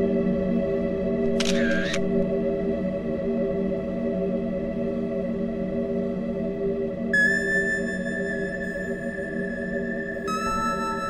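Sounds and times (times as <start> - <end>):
ambient music of sustained tones: 0.0 - 11.0.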